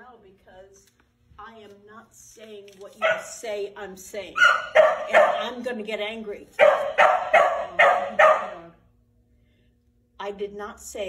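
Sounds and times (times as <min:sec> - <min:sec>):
dog barking: 0:03.0 - 0:03.4, 0:04.4 - 0:05.7, 0:06.6 - 0:08.8.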